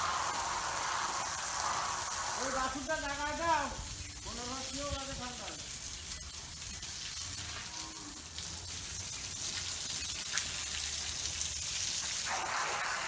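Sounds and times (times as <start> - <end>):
steady hiss: 0.0 - 10.2, 11.5 - 13.0.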